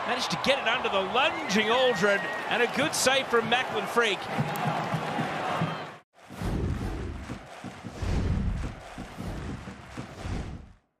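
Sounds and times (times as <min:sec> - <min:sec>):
stadium crowd noise: 0:00.0 - 0:10.6.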